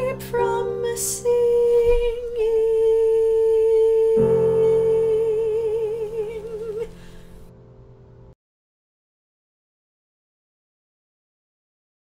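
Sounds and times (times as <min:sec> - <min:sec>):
person singing a long note: 0:00.0 - 0:07.0
piano chords: 0:00.0 - 0:08.4.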